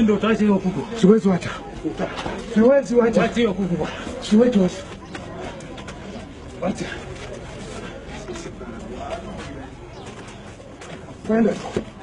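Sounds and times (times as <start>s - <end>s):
men's voices: 0.0s - 12.0s.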